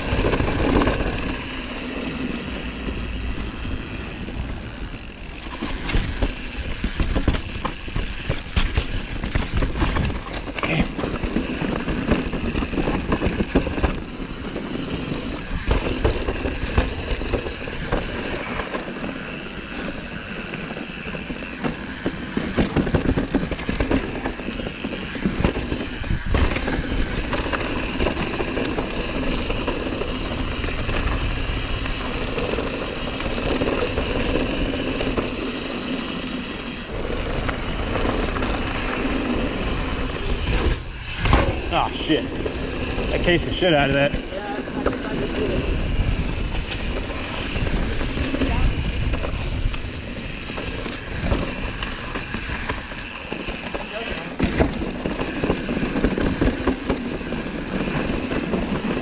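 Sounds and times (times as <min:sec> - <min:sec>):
bike rattling and knocking: 0:00.0 - 0:59.0
bike tyres rolling on dirt: 0:00.0 - 0:59.0.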